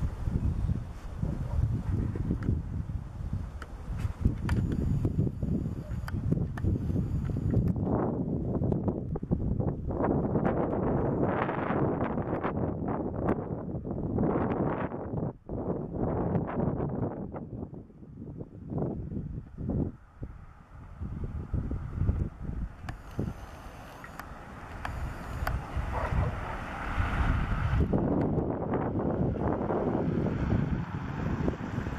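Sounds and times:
wind buffeting microphone: 0.0s - 31.9s.

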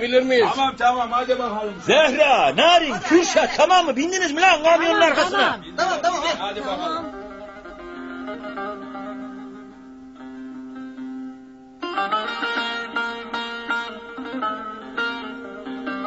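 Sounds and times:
quick plucked-string notes: 5.7s - 16.0s.

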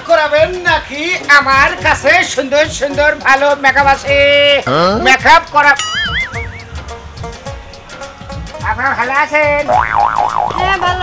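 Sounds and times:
background music with steady beat: 0.0s - 11.0s
comic sing-song voice: 4.7s - 5.1s.

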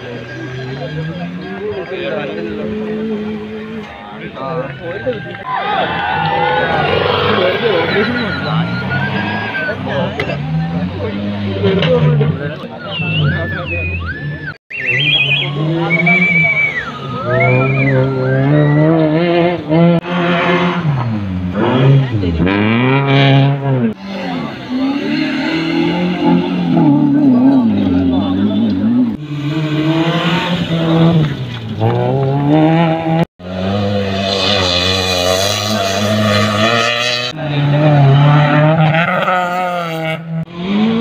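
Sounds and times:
race car engine revving: 6.1s - 41.0s.

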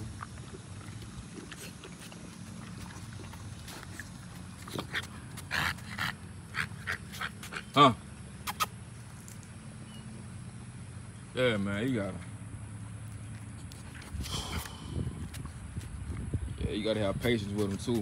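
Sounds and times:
puppies scuffling: 16.8s - 18.0s.

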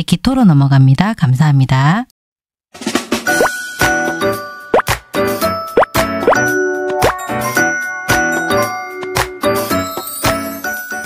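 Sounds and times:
playful music jingle: 3.2s - 11.0s
rising bloop pop effects: 5.8s - 7.2s.

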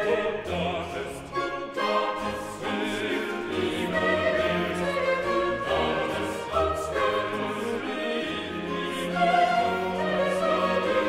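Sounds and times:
choir singing: 0.0s - 11.0s
orchestral accompaniment: 0.0s - 11.0s.

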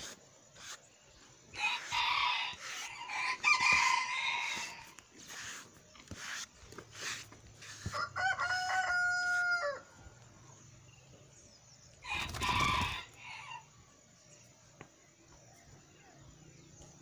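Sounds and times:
rooster crowing: 1.6s - 5.0s, 7.8s - 10.0s, 12.0s - 13.7s.

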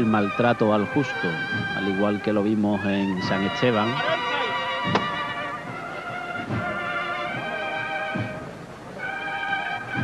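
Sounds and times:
held wind chords: 0.0s - 10.0s
low drum beats: 0.0s - 10.0s.

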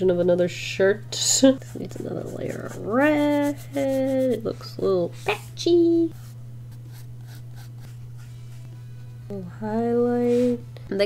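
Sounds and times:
low steady hum: 0.0s - 11.0s
paintbrush strokes on paper: 1.4s - 9.2s.

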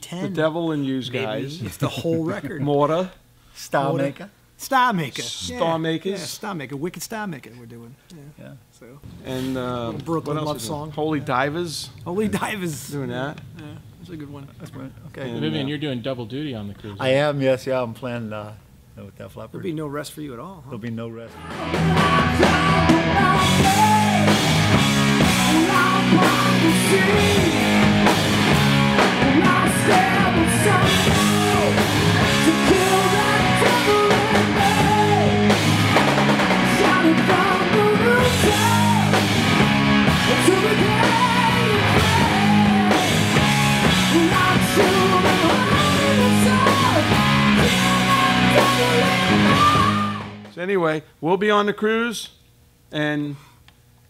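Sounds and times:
male lead vocal: 21.4s - 24.6s, 25.2s - 27.9s, 29.0s - 35.7s, 36.5s - 39.3s, 40.3s - 50.4s
hard rock band playing: 21.4s - 50.5s.

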